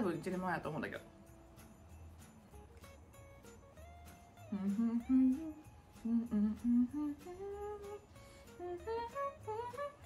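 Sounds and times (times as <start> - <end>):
faint background music with beat: 0.0 - 10.0
woman humming a tune: 4.4 - 10.0.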